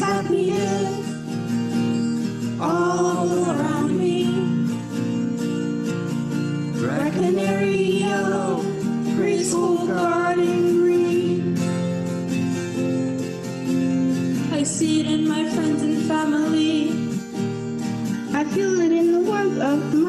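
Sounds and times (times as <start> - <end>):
person singing: 0.0 - 1.2, 2.5 - 4.8, 6.8 - 11.7, 18.4 - 20.0
guitar accompaniment: 0.0 - 20.0.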